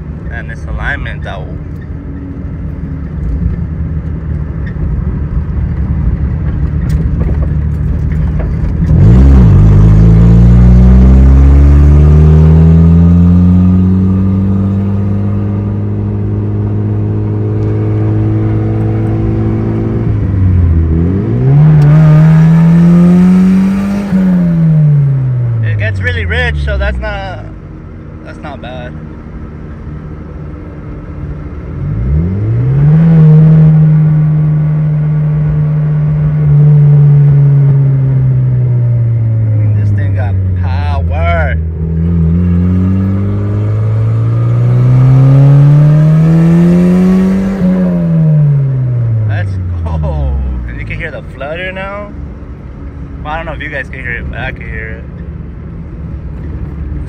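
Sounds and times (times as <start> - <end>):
car engine revving from inside cabin: 8.9 - 25.6, 31.8 - 39.2, 41.8 - 49.3.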